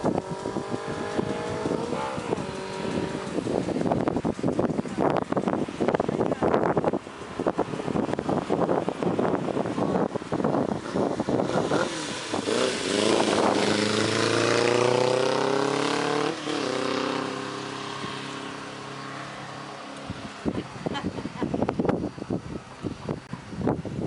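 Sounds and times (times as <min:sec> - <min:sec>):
motorcycle engine accelerating: 0:00.0 - 0:23.3.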